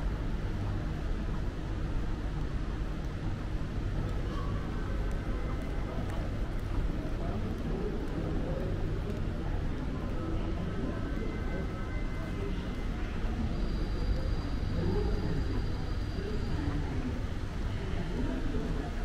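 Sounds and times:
steady low rumble: 0.0 - 11.0
indistinct chatter: 0.0 - 19.0.

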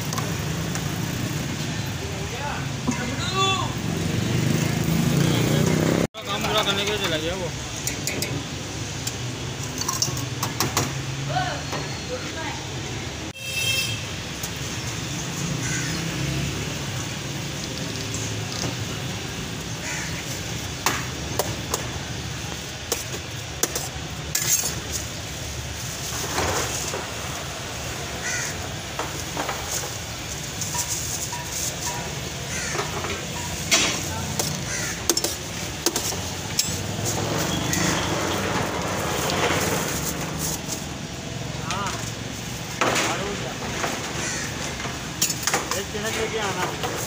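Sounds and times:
traffic hum: 0.0 - 47.0
voices: 1.7 - 8.5, 26.2 - 47.0
steel pots and spoons clinking: 9.6 - 10.5, 29.7 - 38.1.

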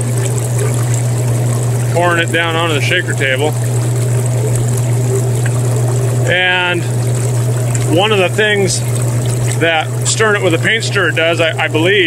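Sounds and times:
water trickling across table: 0.0 - 10.9
low machine hum: 0.0 - 12.0.

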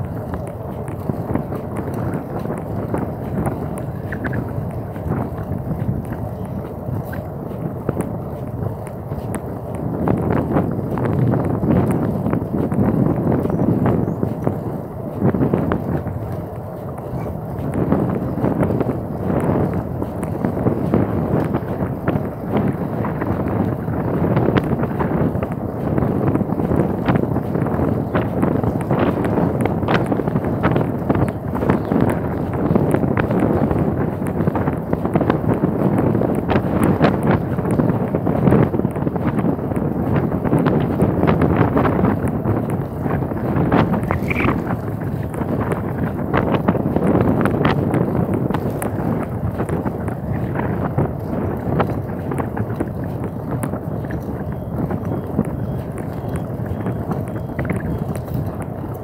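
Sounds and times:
clicks and knocks from bicycle ride: 0.0 - 59.0
wind buffeting microphone: 0.0 - 59.0.

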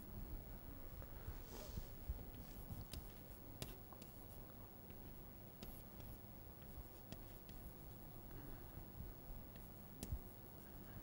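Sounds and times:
chalk tapping: 5.6 - 8.2, 9.5 - 10.3.

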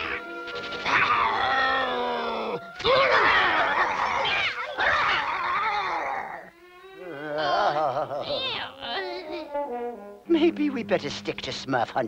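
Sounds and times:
cartoon bear roaring: 0.0 - 8.8.

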